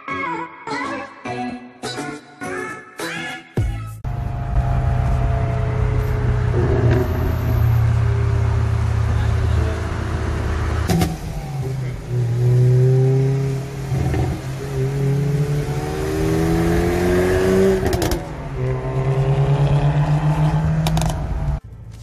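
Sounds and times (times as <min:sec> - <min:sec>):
car engine accelerating hard: 0:04.1 - 0:21.6.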